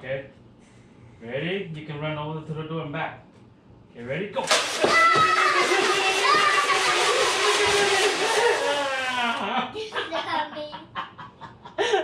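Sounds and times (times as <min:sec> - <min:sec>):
child yelling: 0:04.8 - 0:09.1.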